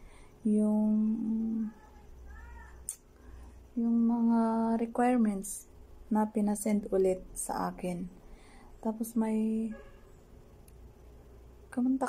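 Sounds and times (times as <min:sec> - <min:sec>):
cat meowing: 0:01.7 - 0:02.8.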